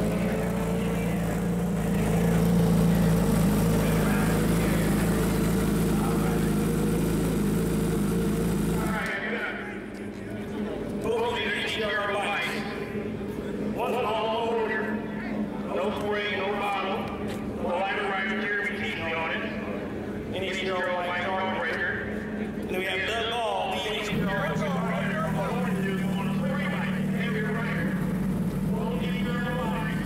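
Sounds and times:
motorcycle engine running: 0.0 - 9.2, 24.1 - 30.0
man talking: 3.1 - 6.7, 8.7 - 9.8, 22.7 - 30.0
steady low hum: 24.0 - 30.0.

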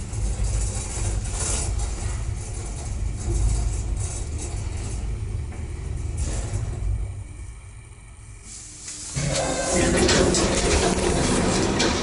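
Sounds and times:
lift low rumble: 0.0 - 12.0.

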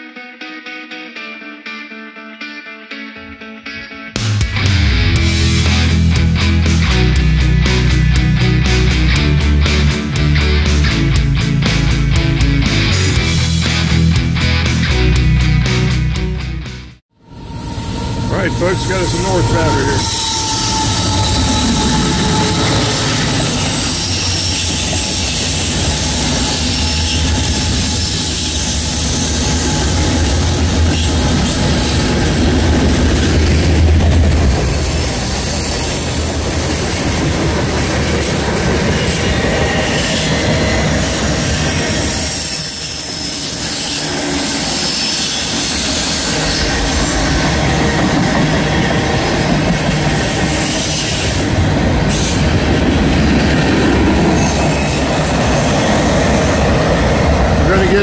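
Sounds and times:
locomotive engine drone: 4.8 - 58.0
high wheel squeal: 17.3 - 33.8, 34.4 - 52.6
train wheels rumbling on rails: 17.3 - 58.0.

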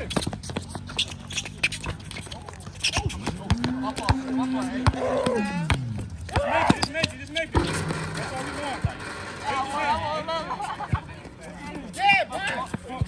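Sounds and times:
players calling out: 2.8 - 13.0
basketball bouncing on concrete: 2.9 - 6.9
players' footsteps: 8.0 - 13.0.

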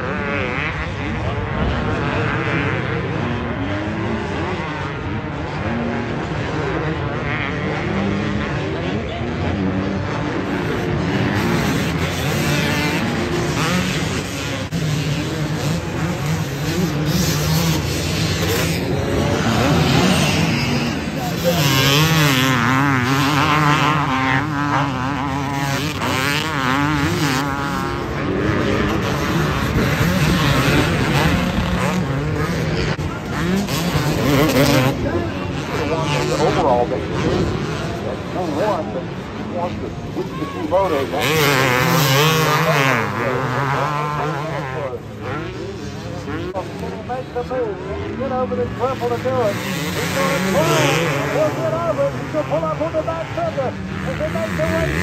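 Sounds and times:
motocross bikes revving past: 0.0 - 55.0.

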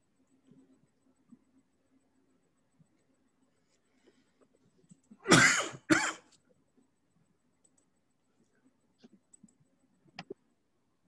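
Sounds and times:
man coughing: 5.2 - 6.3.

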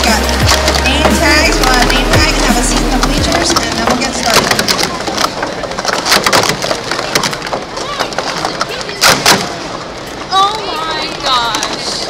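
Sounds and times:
loud plastic cup clacks: 0.0 - 9.7
plastic cups clattering: 0.0 - 9.9.

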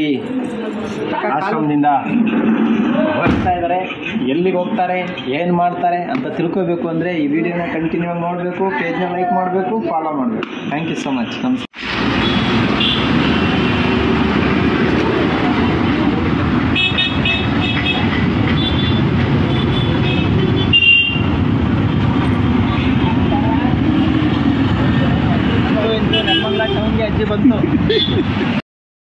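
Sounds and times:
people's voices: 0.0 - 11.7, 22.2 - 28.6
roar of passing vehicles: 11.8 - 16.8, 17.4 - 26.1
car horns beeping: 12.2 - 13.8, 16.7 - 21.4, 25.9 - 27.0.

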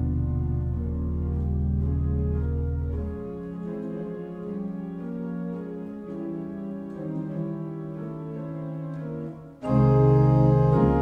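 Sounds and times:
pipe organ playing chords: 0.0 - 11.0.

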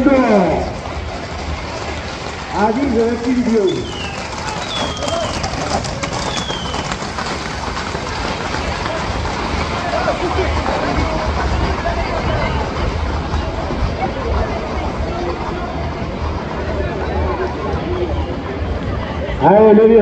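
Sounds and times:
horse hooves clattering on asphalt: 0.0 - 18.9
crowd chatter and shouts: 0.0 - 20.0.

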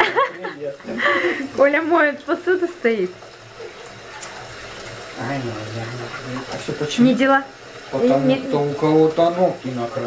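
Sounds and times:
tap running into a sink: 0.8 - 10.0.

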